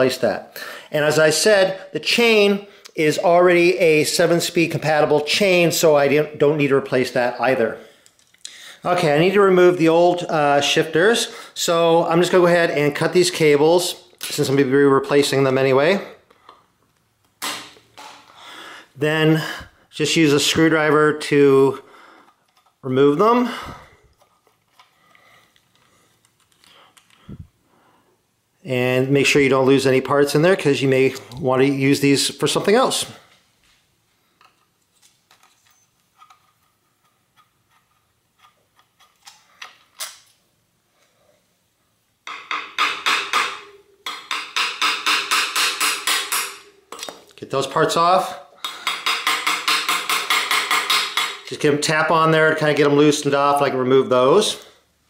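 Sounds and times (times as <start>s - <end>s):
screwdriver tapping on metal: 42.3s - 46.5s, 48.6s - 51.4s.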